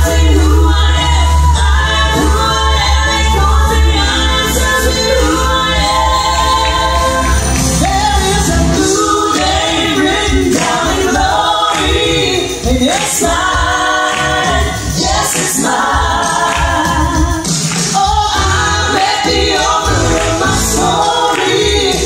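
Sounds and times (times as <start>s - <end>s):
band with keyboard and bass: 0.0s - 22.0s
women singing gospel: 0.0s - 22.0s.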